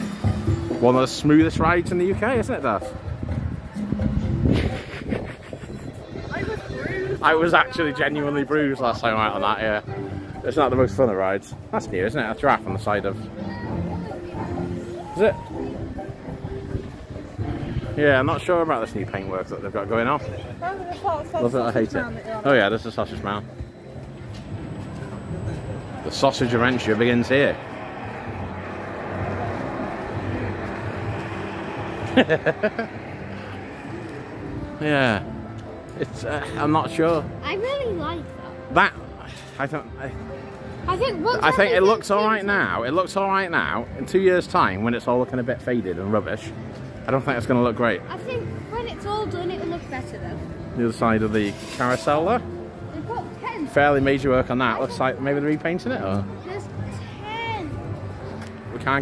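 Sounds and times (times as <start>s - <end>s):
music: 0.0s - 59.0s
low hum: 23.6s - 37.4s
low steady rumble: 24.4s - 36.3s.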